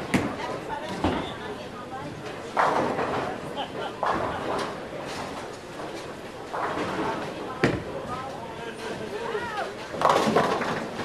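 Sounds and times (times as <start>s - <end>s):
bowling ball rolling: 9.9s - 11.0s.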